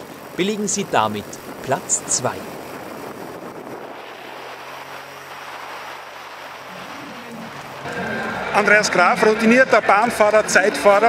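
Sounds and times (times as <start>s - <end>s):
wind rushing: 0.0s - 8.7s
road noise from fast vehicle: 0.0s - 11.0s.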